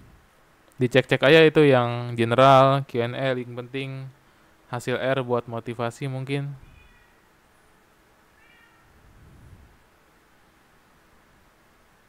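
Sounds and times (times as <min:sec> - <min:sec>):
faint high-pitched call: 0:06.6 - 0:09.0.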